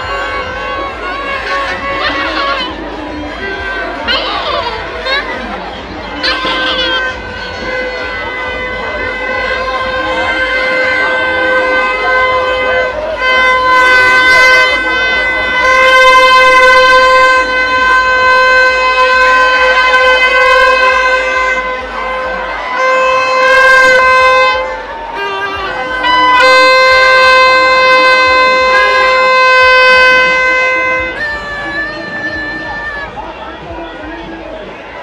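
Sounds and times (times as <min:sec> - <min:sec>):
faint crowd noise: 0:00.0 - 0:35.0
high held wind instrument note: 0:00.0 - 0:35.0.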